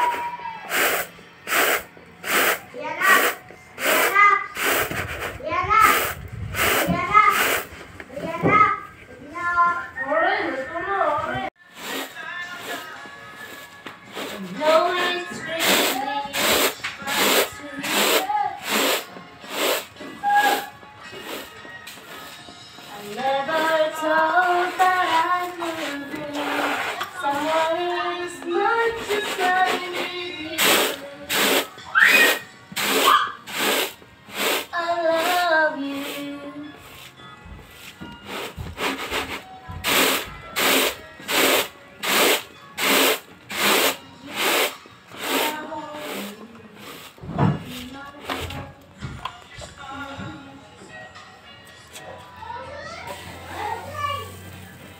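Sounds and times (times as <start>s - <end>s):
person singing: 0.0s - 5.2s, 11.3s - 37.1s, 38.3s - 53.3s
rice grains swishing in a tray: 0.0s - 7.7s, 11.7s - 21.5s, 29.2s - 35.4s, 38.3s - 47.2s.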